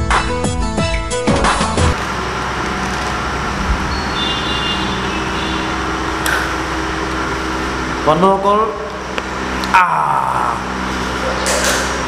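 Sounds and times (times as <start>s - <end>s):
rushing background noise: 1.9s - 9.6s
low hum: 1.9s - 12.0s.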